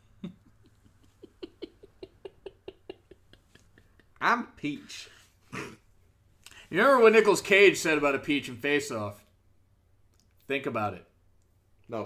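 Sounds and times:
man's stifled laughter: 0.0s - 4.2s.

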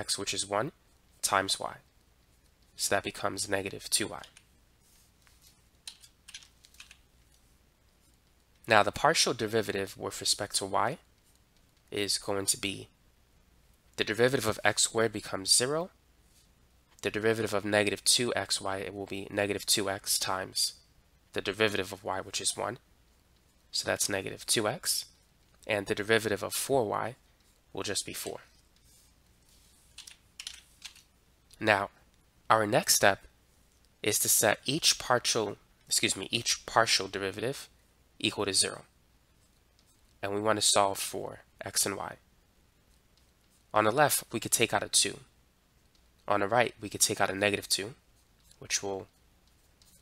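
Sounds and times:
faint room hiss: 0.0s - 50.0s.

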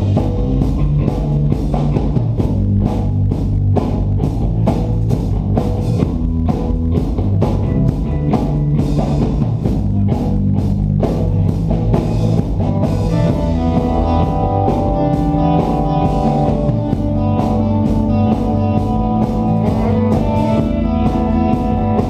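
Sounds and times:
bass guitar: 0.0s - 22.0s
distorted electric guitars: 0.0s - 22.0s
drum kit beat: 0.0s - 22.0s.

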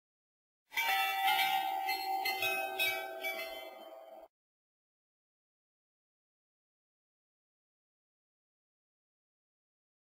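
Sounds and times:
bell-like chimes: 0.7s - 4.3s.

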